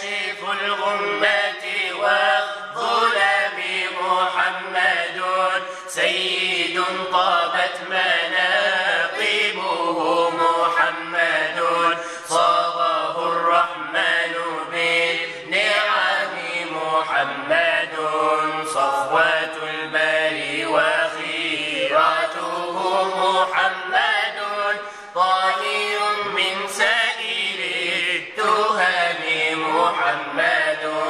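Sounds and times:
person chanting unaccompanied: 0.0s - 31.0s.

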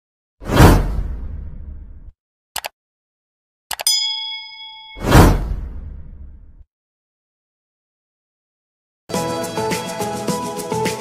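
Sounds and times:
whoosh with deep rumble: 0.5s - 2.1s, 5.0s - 6.6s.

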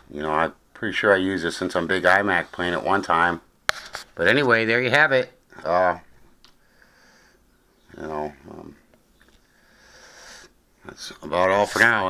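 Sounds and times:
person sniffing: 9.4s - 10.6s.

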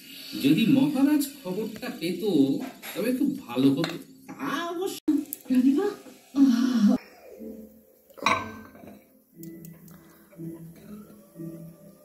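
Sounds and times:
glass bowl clinking on glass: 8.2s - 9.0s.

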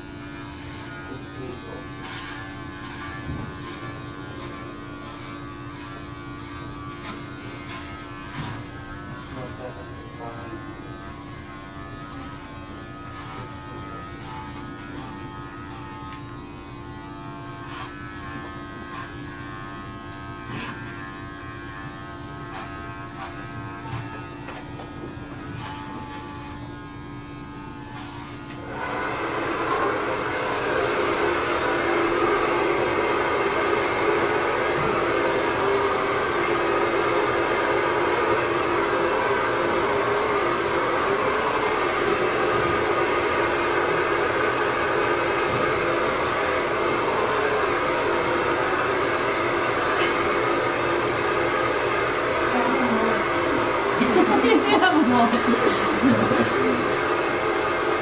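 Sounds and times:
electric hair clippers buzzing: 0.0s - 58.0s
loud steady whirring: 0.0s - 58.0s.

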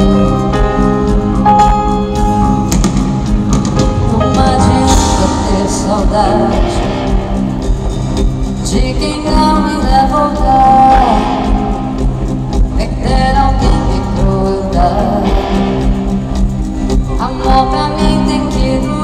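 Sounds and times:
live band music with singer: 0.0s - 19.0s.

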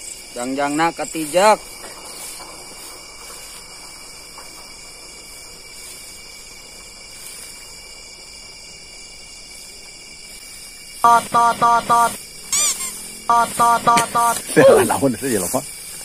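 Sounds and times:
crickets and insects trilling: 0.0s - 16.0s.

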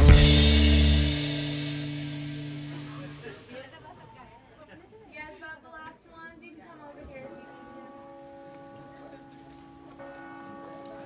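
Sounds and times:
faint sustained musical chord: 7.2s - 11.0s.

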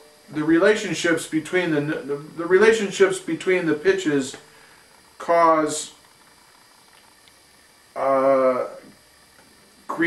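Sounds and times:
light hiss: 0.0s - 10.0s.

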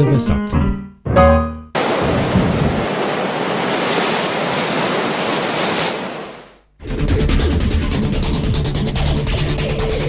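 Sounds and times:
ocean waves rushing: 1.8s - 6.7s.

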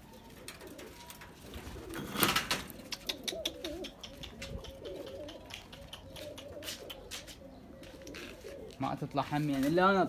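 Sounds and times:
pigeons cooing: 0.0s - 10.0s.

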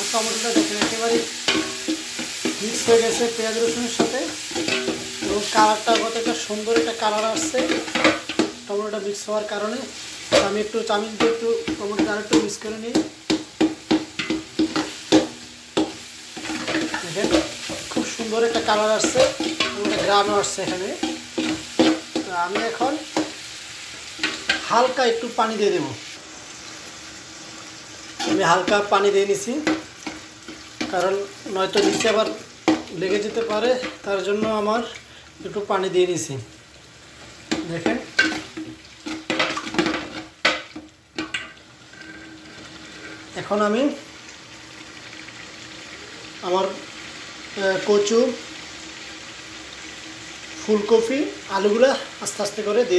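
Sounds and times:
faint sizzle: 0.0s - 52.9s.

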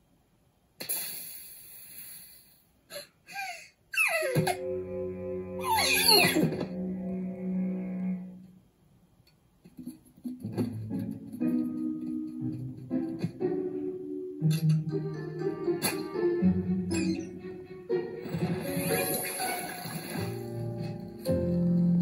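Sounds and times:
sudden cartoon noise: 5.6s - 8.2s.

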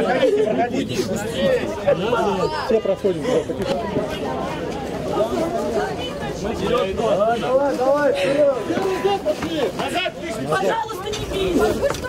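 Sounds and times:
people talking over one another: 0.0s - 12.0s.

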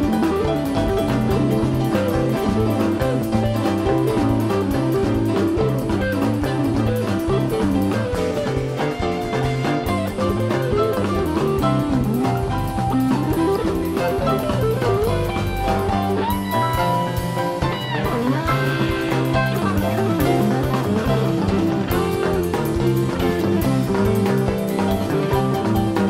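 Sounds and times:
bending electric guitar note: 0.0s - 26.0s
rock band playing: 0.0s - 26.0s.

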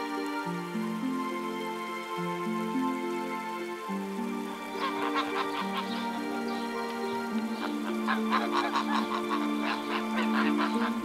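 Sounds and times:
background music: 0.0s - 11.0s
geese honking: 4.6s - 11.0s.

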